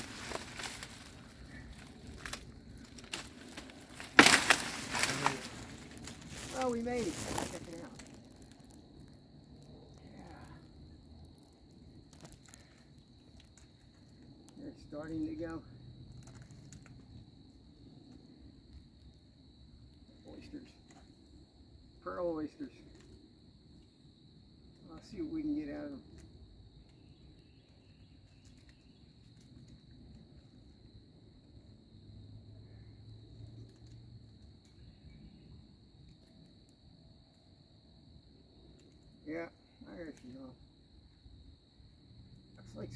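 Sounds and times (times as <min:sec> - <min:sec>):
hands rustling on bark: 0:00.0 - 0:08.6.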